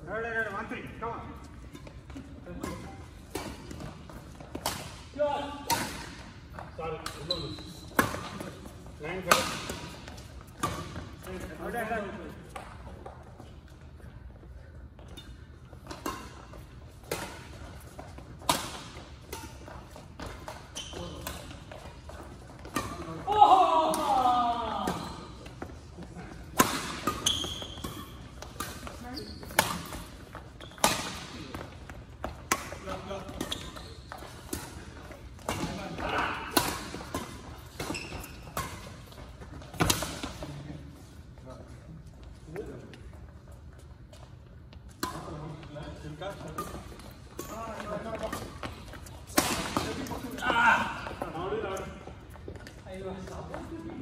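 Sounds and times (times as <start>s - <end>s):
players calling out: 23.0s - 25.4s.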